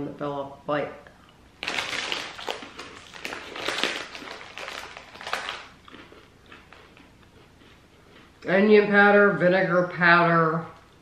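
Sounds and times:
plastic snack bag crinkling: 1.6s - 7.1s
pretzel snacks crunching: 1.6s - 8.3s.

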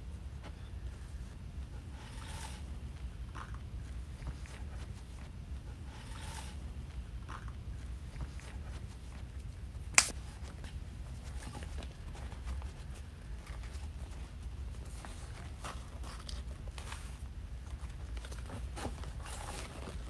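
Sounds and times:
low steady hum: 0.0s - 20.0s
sharp click: 10.0s - 10.2s.

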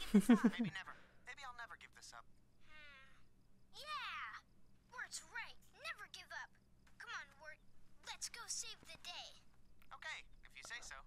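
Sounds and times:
faint cartoon voices: 0.4s - 9.4s.

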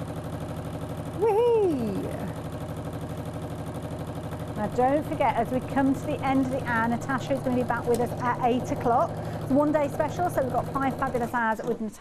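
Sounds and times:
electric sewing machine stitching: 0.0s - 12.0s.

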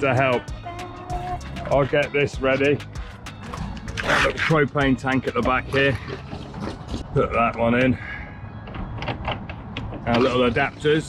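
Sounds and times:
metallic clicks and scrapes: 3.3s - 7.0s.

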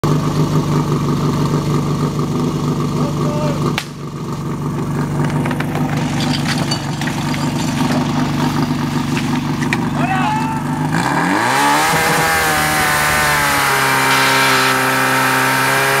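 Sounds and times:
fire pump engine revving: 0.0s - 16.0s.

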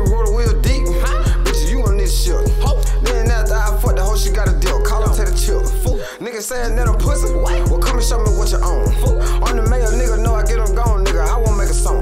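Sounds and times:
deep sustained bass: 0.0s - 6.0s, 6.7s - 12.0s
rapping over a beat: 0.0s - 12.0s.

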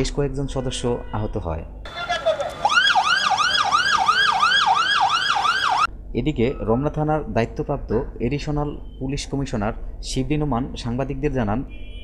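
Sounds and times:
police siren yelping: 1.9s - 7.0s.

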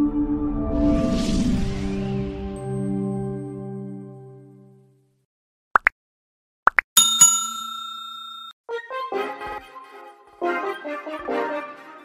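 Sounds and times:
bell ringing: 7.0s - 8.6s.

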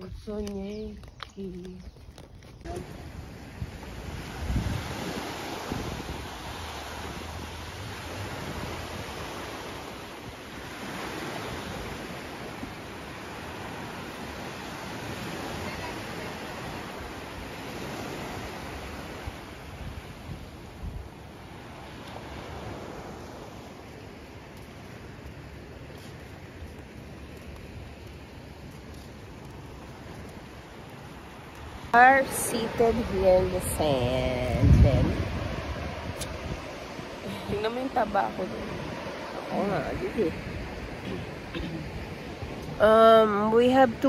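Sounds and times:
small waves washing up beach: 0.0s - 44.0s
wind rumble on microphone: 0.0s - 44.0s.

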